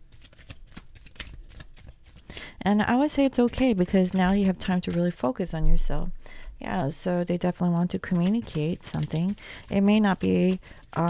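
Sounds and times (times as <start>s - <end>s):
cards being shuffled: 0.1s - 2.4s, 3.0s - 5.2s, 7.7s - 11.0s.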